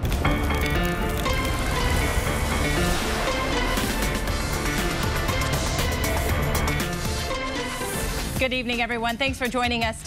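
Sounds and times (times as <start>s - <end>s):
news theme music: 0.0s - 10.0s.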